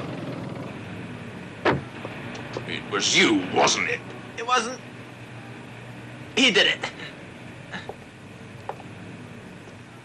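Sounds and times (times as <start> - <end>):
city street traffic: 0.0 - 10.0.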